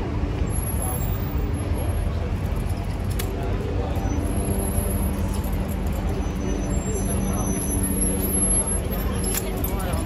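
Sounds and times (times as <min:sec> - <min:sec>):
heavy vehicle engine rumble: 0:00.0 - 0:10.0
road traffic noise: 0:00.0 - 0:10.0.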